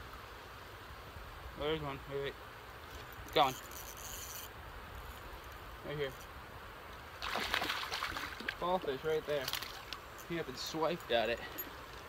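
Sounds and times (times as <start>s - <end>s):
river water running: 0.0s - 12.0s.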